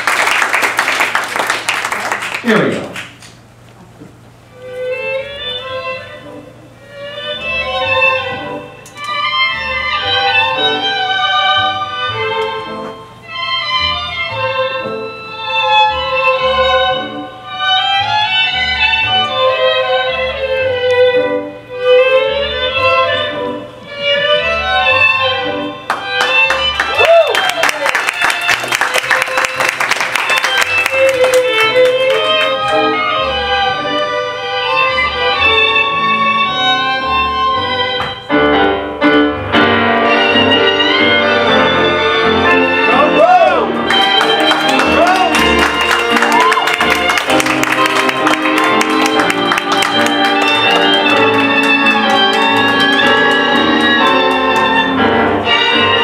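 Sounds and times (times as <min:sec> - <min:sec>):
tango music violin melody: 0:04.4 - 0:56.0.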